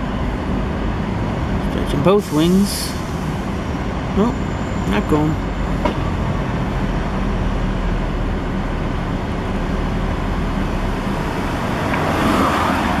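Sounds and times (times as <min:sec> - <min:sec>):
street traffic: 0:00.0 - 0:13.0
vehicle passing: 0:10.6 - 0:13.0.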